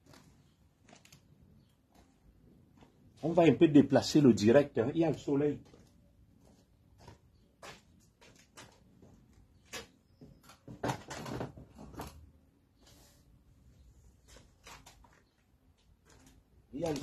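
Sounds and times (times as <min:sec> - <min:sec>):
handling knocks clicks and scuffs: 0:05.6 - 0:12.2.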